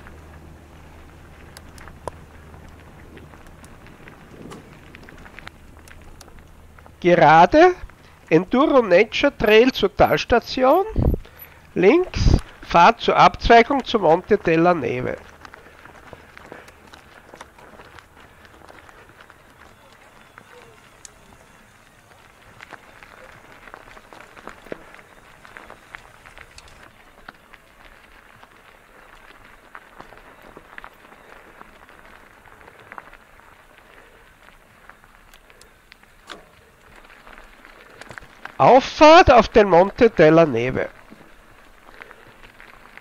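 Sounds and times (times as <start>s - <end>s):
bike clicks and rattles: 0.0s - 43.0s
bike tyres crunching on gravel: 0.0s - 43.0s.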